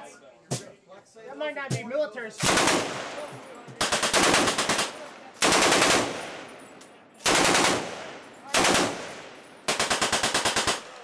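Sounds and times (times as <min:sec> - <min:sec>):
automatic rifle bursts: 0:03.8 - 0:06.2, 0:07.2 - 0:11.0.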